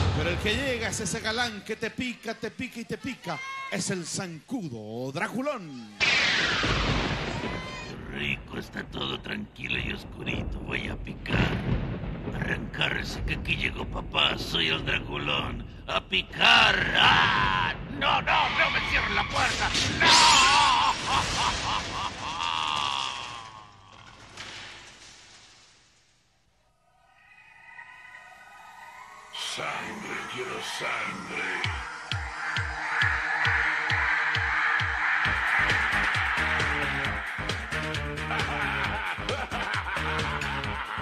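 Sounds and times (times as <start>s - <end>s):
crash sound effect with falling hiss: 6.0s - 7.9s, 24.0s - 26.1s
glass door smashing: 19.2s - 26.1s
wavering cry: 26.8s - 29.6s, 30.8s - 39.2s.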